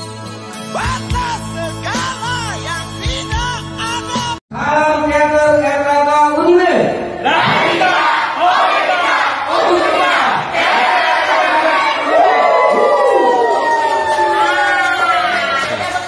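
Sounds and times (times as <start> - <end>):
crowd shouting together: 7.2 - 15.9.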